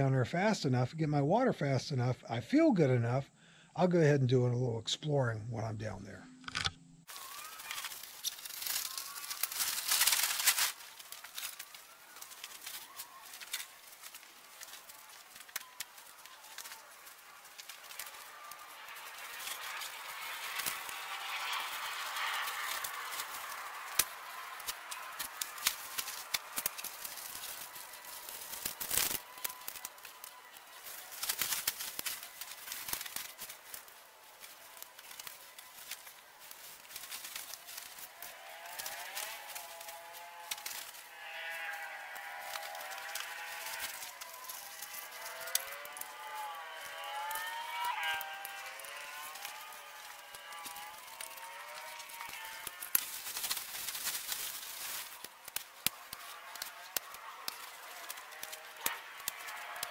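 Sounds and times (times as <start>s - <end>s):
tent poles clicking and scraping: 6.4s - 59.9s
tent fabric rustling: 7.1s - 59.9s.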